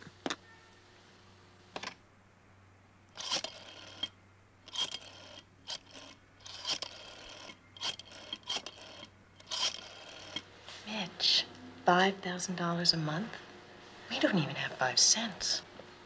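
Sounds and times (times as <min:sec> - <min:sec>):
telephone dial clicks and scrapes: 0:03.2 - 0:10.4.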